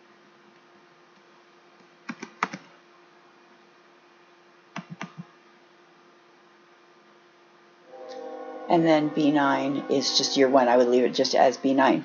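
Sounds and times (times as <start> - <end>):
faint steady hum: 0.0 - 12.0
computer keyboard keystrokes: 1.8 - 2.7, 4.8 - 5.3.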